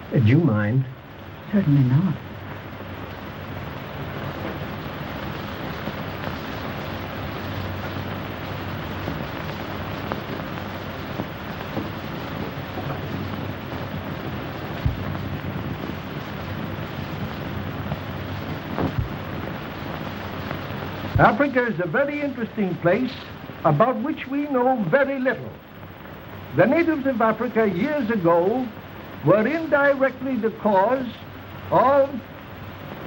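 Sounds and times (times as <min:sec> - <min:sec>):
film soundtrack hiss and hum: 0:00.0 - 0:33.0.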